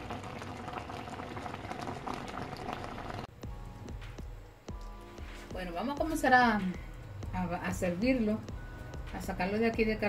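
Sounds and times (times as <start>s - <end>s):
syrup bubbling in a pot: 0.0s - 3.3s.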